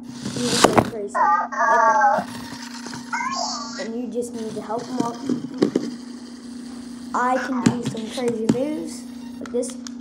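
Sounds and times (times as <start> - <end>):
toy robot motors humming: 0.0 - 10.0.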